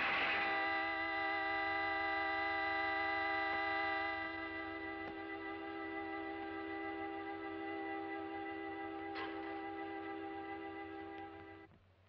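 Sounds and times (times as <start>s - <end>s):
noisy wash: 0.0s - 4.4s
steady held chord: 0.0s - 11.7s.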